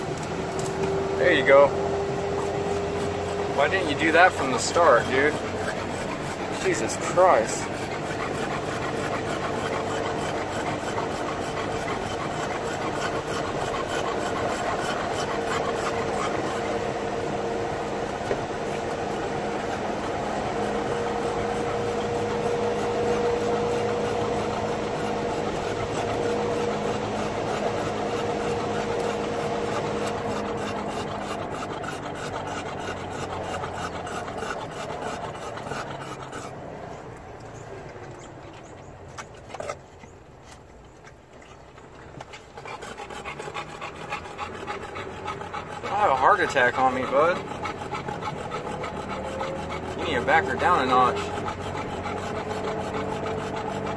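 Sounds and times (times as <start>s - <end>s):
car road noise and engine hum: 0.0s - 53.9s
dog panting: 0.0s - 53.9s.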